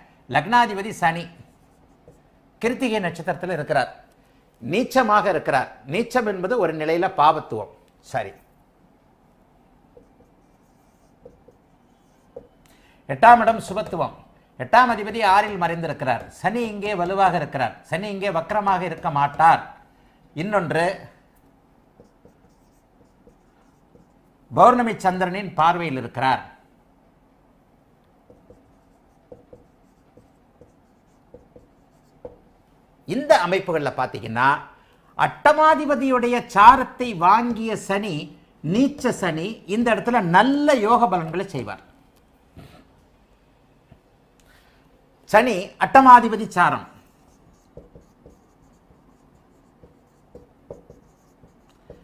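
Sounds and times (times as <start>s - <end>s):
marker pen writing on whiteboard: 1.4s - 2.3s, 9.9s - 12.6s, 13.4s - 14.1s, 14.8s - 19.5s, 21.9s - 24.3s, 28.1s - 32.6s, 38.8s - 39.2s, 47.0s - 52.0s.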